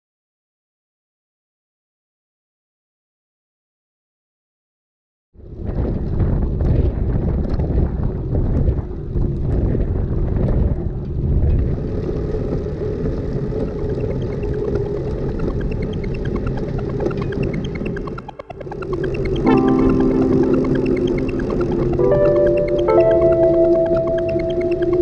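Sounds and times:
bicycle tyre roar: 5.4 - 19.5
wind buffeting microphone: 5.4 - 19.5.

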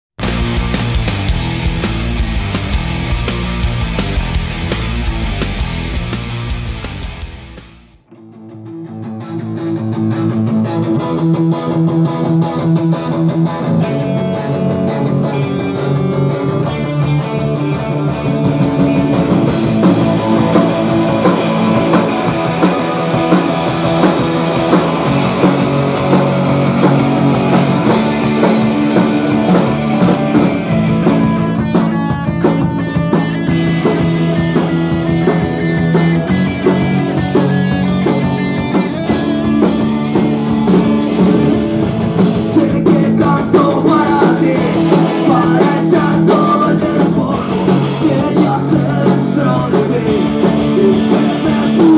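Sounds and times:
drums: 0.0 - 51.9
bass guitar: 0.1 - 51.9
electric guitars: 0.2 - 51.9.

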